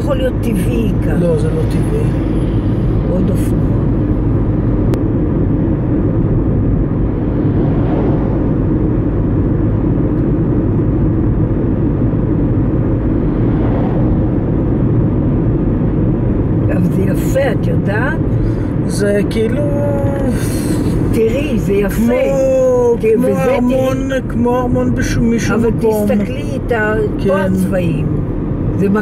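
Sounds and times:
car road noise rumble: 0:00.0 - 0:29.0
truck passing: 0:00.9 - 0:16.7.

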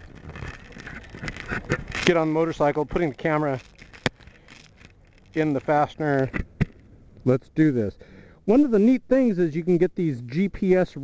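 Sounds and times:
camera handling rustling: 0:00.0 - 0:06.9.

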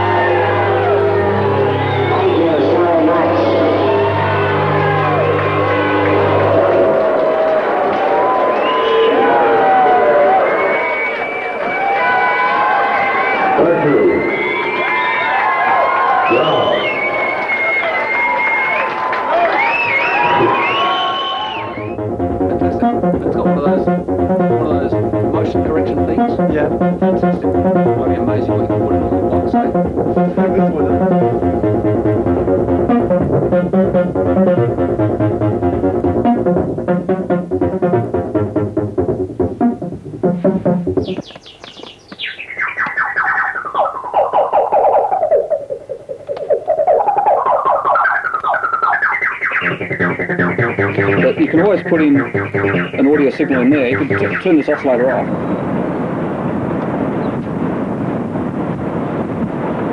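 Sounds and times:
electronic dance music: 0:00.0 - 0:07.2, 0:21.5 - 0:55.3
synthesizer tone sweeping in pitch: 0:00.0 - 0:07.2, 0:20.0 - 0:41.3, 0:42.2 - 0:55.5.

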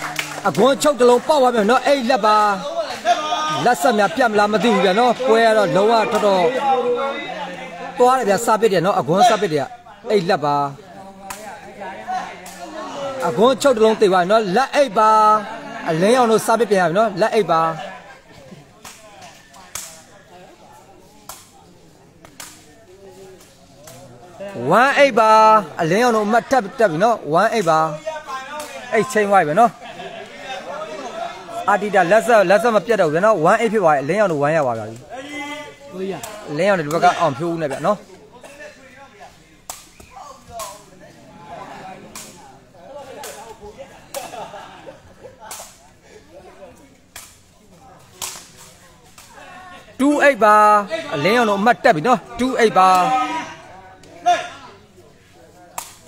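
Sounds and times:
faint crowd chatter: 0:00.0 - 0:56.0.

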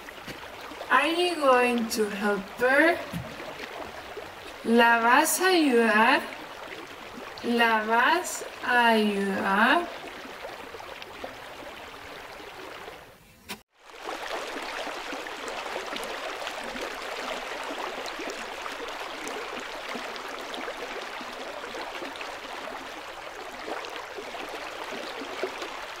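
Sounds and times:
stream of running water: 0:00.0 - 0:13.2, 0:13.8 - 0:26.0.

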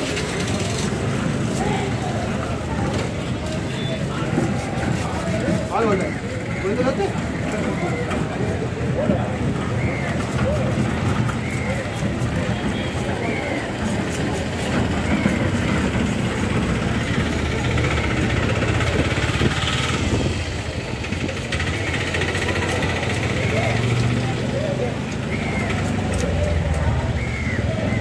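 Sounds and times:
engine running: 0:00.0 - 0:27.5.

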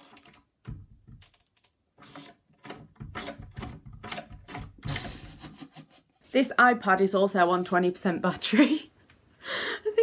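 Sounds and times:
door latch clicking and rattling: 0:00.1 - 0:05.0.

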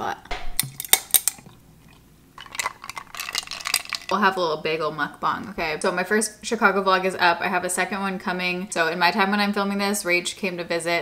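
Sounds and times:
ice cubes clinking in a glass: 0:02.4 - 0:04.2.

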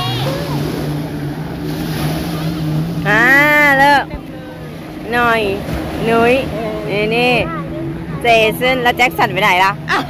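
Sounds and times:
boat engine droning: 0:00.0 - 0:10.0
surf washing: 0:00.0 - 0:10.0.

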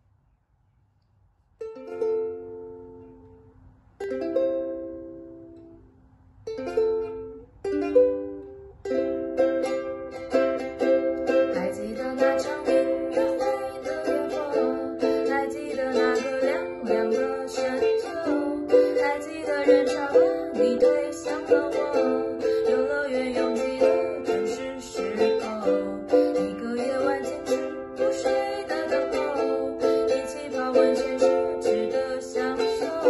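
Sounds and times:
ukulele strumming: 0:01.6 - 0:33.0.

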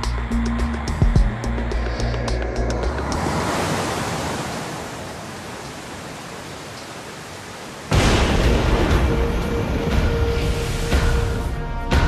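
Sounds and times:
music with bass pulse: 0:00.0 - 0:03.3, 0:08.4 - 0:12.0
water surging and crashing: 0:00.1 - 0:12.0
flowing water rushing: 0:01.5 - 0:11.7.

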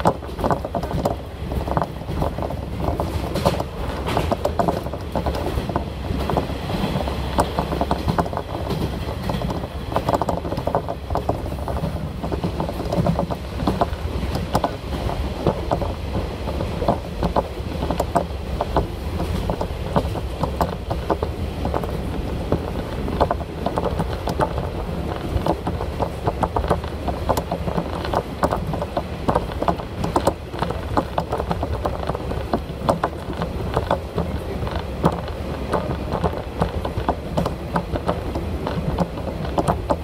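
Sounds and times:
railcar engine and wheels rumbling: 0:00.0 - 0:40.0
sharp clicks and rattles: 0:00.0 - 0:40.0.

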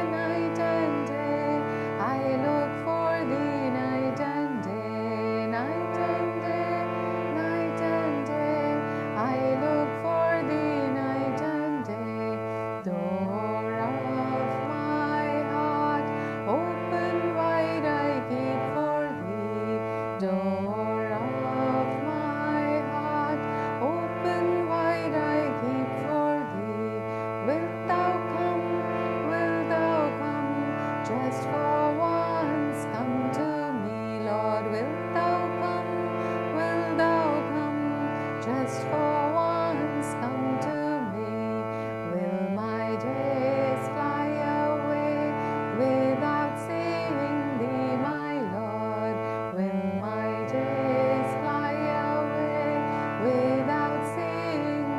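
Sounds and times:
sustained accompanying chords: 0:00.0 - 0:54.9
woman singing a slow chant: 0:00.0 - 0:54.9.

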